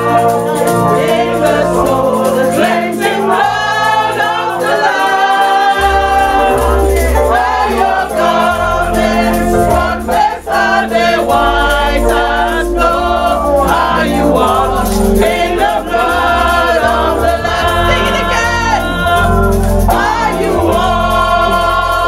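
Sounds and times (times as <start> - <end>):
voices singing along: 0.0 - 22.0
band with bass line: 5.8 - 22.0.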